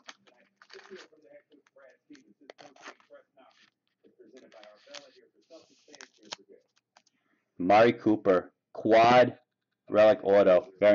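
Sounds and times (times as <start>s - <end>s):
trading card rustling and scraping: 0.0s - 7.2s.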